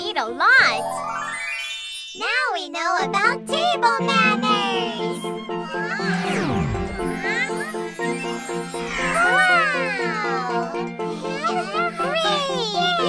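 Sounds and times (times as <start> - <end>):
cheerful children's music: 0.0 - 13.0
wordless gliding vocal sounds: 4.2 - 7.9
downward sweep sound effect: 5.9 - 8.2.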